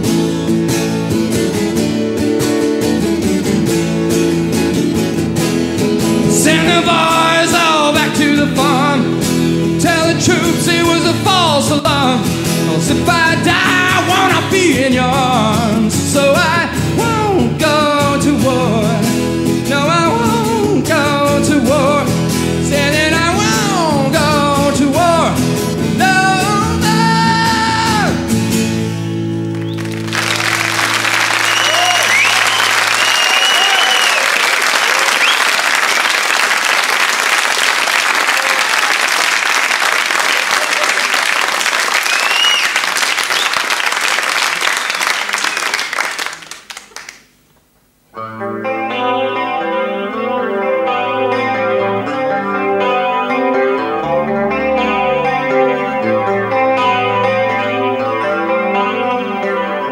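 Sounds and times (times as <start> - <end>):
electric guitar picked chords: 0.0 - 34.1, 48.1 - 59.9
audience applause: 29.4 - 47.3.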